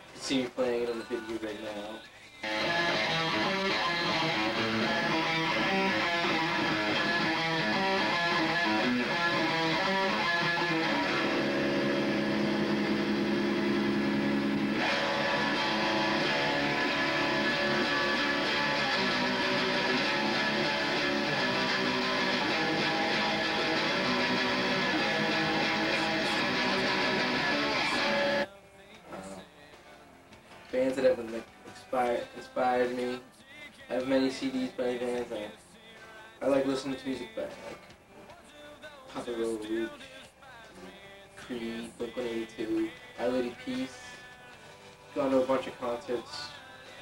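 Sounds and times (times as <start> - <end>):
electric guitar through amplifier: 2.4 - 38.3.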